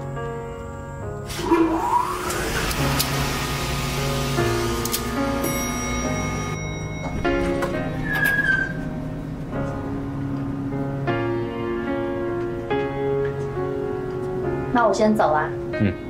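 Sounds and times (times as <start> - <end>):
high whistling note: 7.9 - 8.9.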